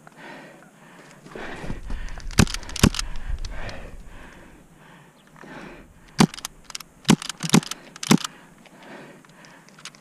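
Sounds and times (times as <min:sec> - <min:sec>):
airsoft gun cracks and clicks: 0:02.0 - 0:03.8, 0:06.0 - 0:08.4.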